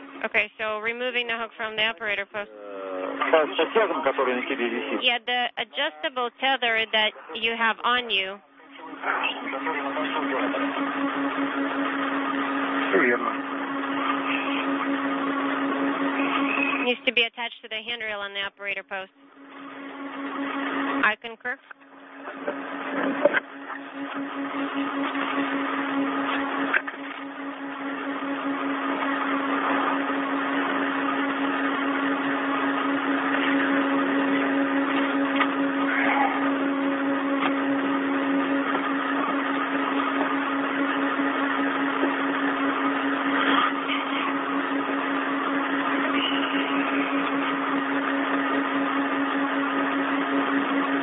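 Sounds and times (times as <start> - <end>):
constant low hum: 0.0 - 51.0
radio static hiss: 1.1 - 8.1, 46.0 - 47.4.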